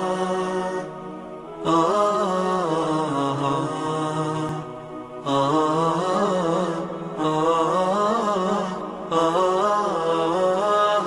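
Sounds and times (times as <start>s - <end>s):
chanted vocal melody: 0.0s - 11.0s.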